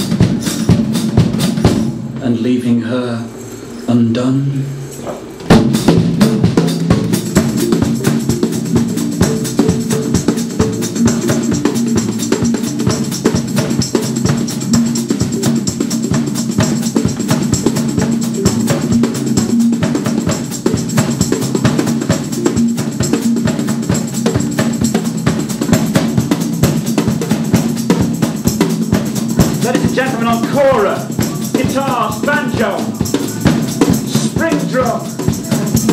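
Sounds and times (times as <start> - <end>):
cymbal and tambourine hits: 4.6 - 35.9.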